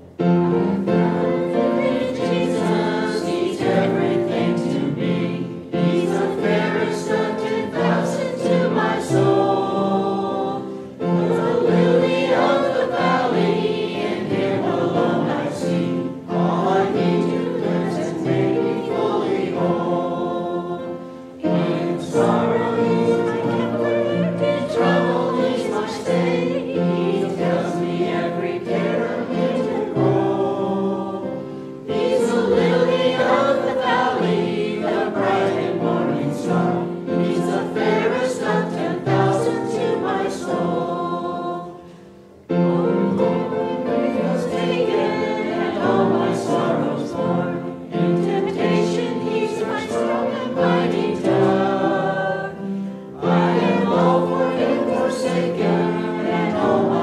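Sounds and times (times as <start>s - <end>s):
group singing a hymn: 0.0s - 57.0s
musical accompaniment: 0.0s - 57.0s.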